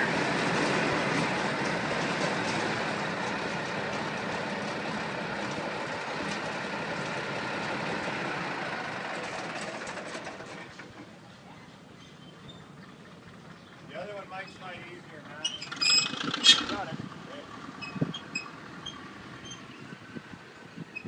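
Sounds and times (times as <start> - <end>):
diesel tractor engine idling: 0.0 - 21.0.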